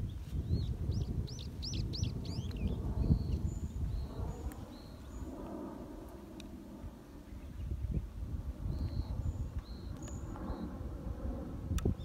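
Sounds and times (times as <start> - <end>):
small bird singing: 0.0 - 5.3, 7.2 - 10.7.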